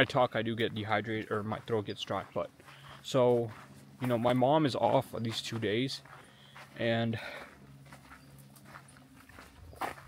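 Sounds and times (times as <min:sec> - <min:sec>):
person speaking: 0:00.0 - 0:06.1.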